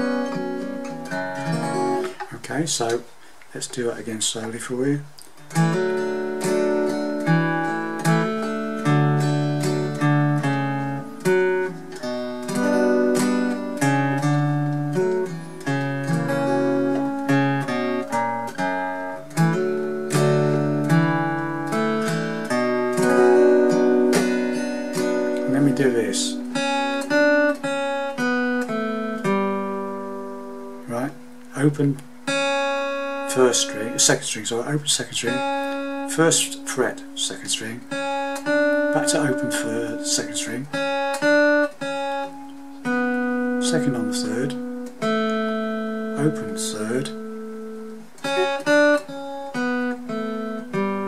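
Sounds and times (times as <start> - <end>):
fingerpicked acoustic guitar notes: 0.0 - 51.0.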